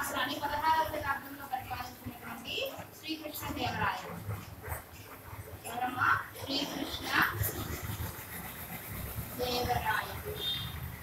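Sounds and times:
woman speaking: 0.0s - 4.2s, 5.6s - 7.7s, 9.4s - 10.6s.

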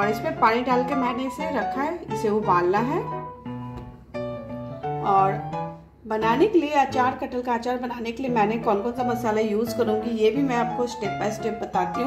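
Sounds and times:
soft instrumental music: 0.0s - 12.0s.

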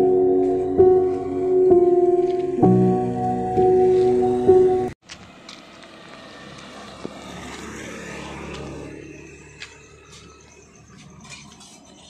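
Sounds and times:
motorbike engine passing: 3.6s - 10.9s.

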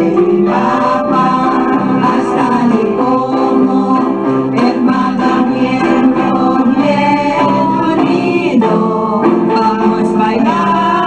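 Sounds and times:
musical backing: 0.0s - 11.0s
people singing together: 0.0s - 11.0s.

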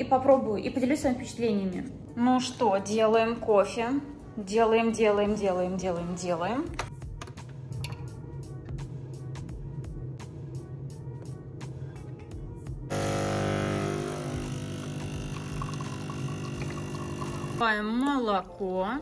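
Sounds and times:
espresso machine pump humming: 12.9s - 17.6s.

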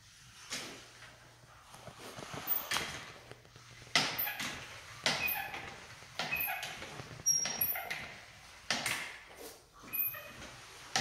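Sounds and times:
mud pump squeaking: 4.0s - 8.2s, 9.9s - 11.0s.

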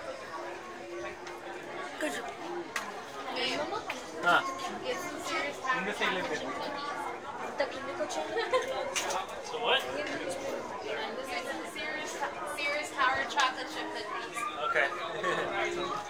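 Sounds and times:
chatter of many voices: 0.0s - 16.0s.

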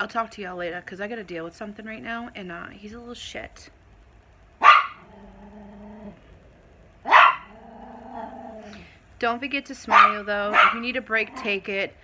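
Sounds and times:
dog barking: 4.6s - 5.1s, 7.0s - 7.6s, 9.9s - 11.6s
dog growling: 4.9s - 8.9s.

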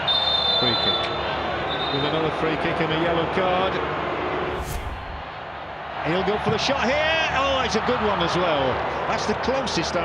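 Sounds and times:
stadium broadcast background noise: 0.1s - 10.0s.

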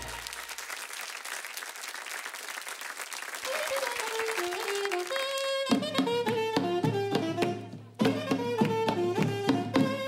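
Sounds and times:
music: 0.0s - 0.8s, 3.4s - 10.0s
audience applauding: 0.0s - 5.8s.

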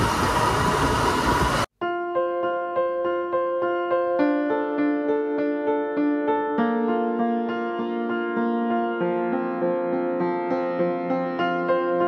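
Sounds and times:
electric piano music: 1.7s - 12.0s.

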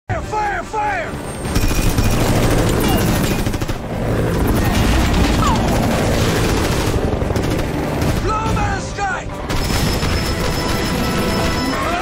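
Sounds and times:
helicopter rotors and engine: 0.1s - 12.0s
machine gun automatic fire: 1.5s - 8.6s, 9.5s - 12.0s.

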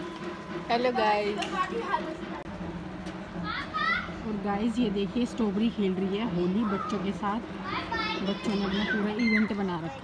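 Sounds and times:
children calling and shouting: 0.0s - 4.5s, 5.8s - 10.0s.

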